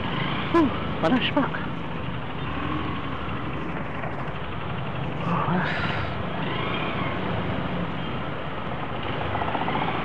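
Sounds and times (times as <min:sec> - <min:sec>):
motorcycle engine running: 0:00.0 - 0:05.6, 0:06.2 - 0:10.0
traffic hum: 0:00.0 - 0:10.0.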